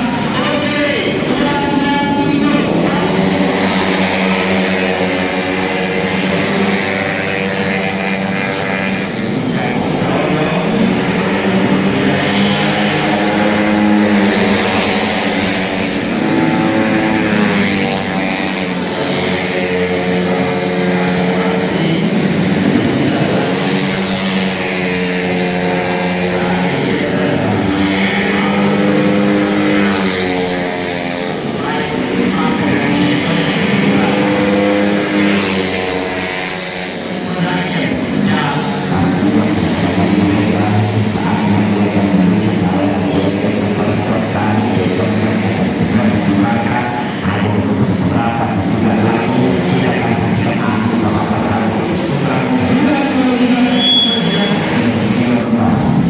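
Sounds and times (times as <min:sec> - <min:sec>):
racing scooter engines: 0:00.0 - 0:56.0.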